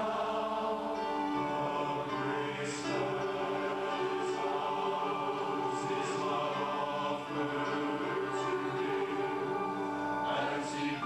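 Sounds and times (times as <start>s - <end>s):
choir singing sustained chords: 0.0s - 11.0s.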